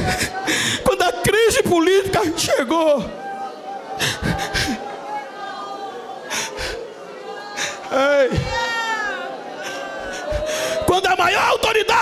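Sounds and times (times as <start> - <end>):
congregation murmuring prayer: 0.0 - 12.0.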